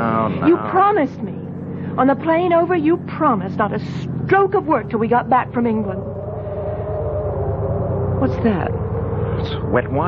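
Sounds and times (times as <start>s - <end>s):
car engine running slowly: 0.0s - 6.8s, 7.8s - 10.0s
steady held tones: 0.6s - 10.0s.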